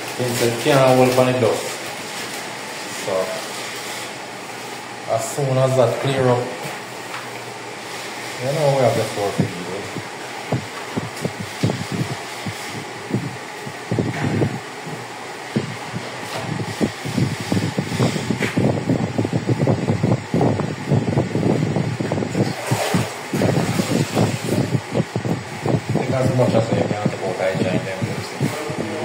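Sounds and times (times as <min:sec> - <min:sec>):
steady background noise: 0:00.0 - 0:29.0
wet sponge scrubbing tiles: 0:22.4 - 0:24.8.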